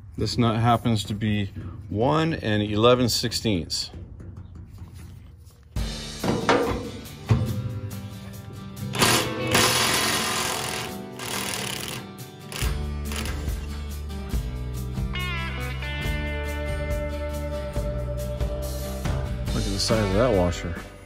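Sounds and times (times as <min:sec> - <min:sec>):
background music: 0:00.0 - 0:21.0
impact wrench hammering: 0:08.9 - 0:13.7.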